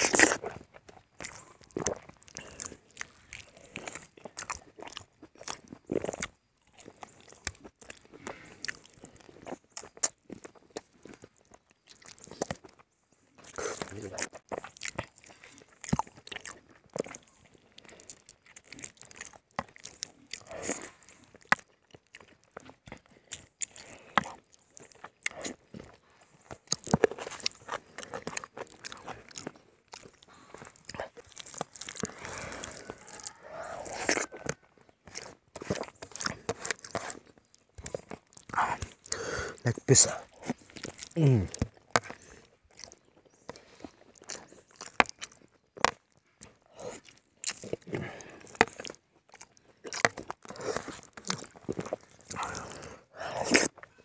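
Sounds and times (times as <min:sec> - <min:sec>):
person biting and chewing food: 0:00.0 - 0:53.9.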